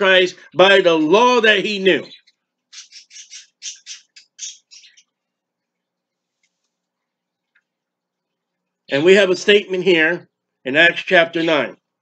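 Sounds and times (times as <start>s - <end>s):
bird giving short harsh calls: 2.0s - 5.0s.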